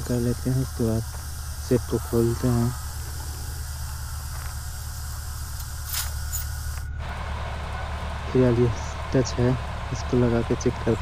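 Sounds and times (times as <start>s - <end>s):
hiss: 0.0s - 6.8s
steady low hum: 0.0s - 11.0s.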